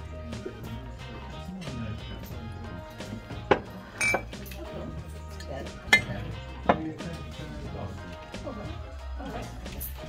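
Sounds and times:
background music: 0:00.0 - 0:10.0
crockery clinking: 0:03.4 - 0:07.0.

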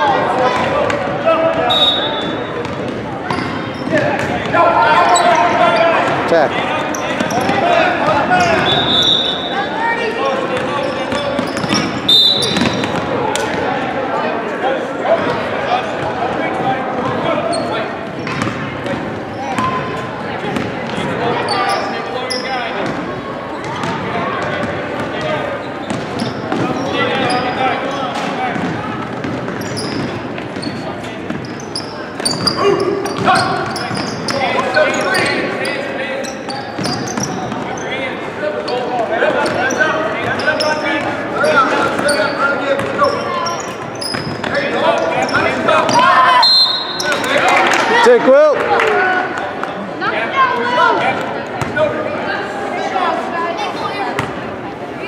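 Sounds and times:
sneakers squeaking: 0:00.0 - 0:13.8, 0:15.2 - 0:47.4, 0:54.0 - 0:54.5
basketball bouncing: 0:02.6 - 0:04.5, 0:10.6 - 0:13.2, 0:18.2 - 0:19.8, 0:28.5 - 0:30.7
people calling out: 0:04.5 - 0:10.2.

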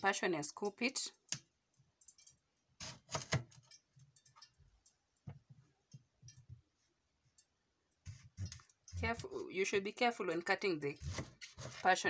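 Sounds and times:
knife cutting fruit rind on board: 0:11.0 - 0:11.9.

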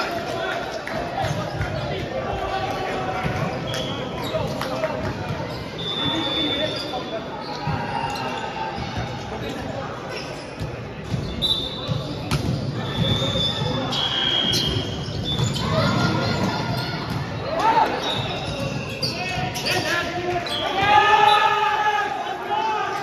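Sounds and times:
players' voices: 0:00.0 - 0:23.0.

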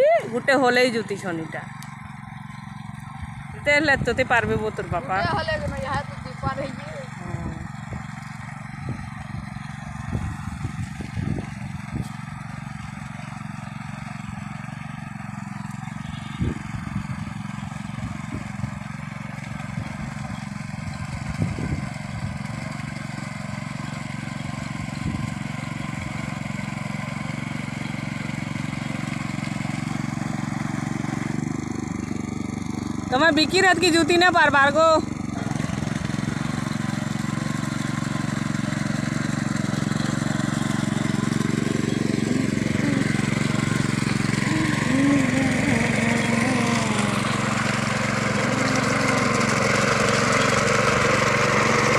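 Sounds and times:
power tiller engine running: 0:00.0 - 0:51.9.

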